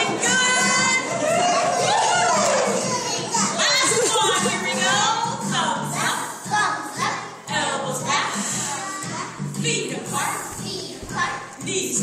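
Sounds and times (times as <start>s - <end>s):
faint children's action song: 0.0s - 12.0s
children laughing and calling out: 0.1s - 4.7s.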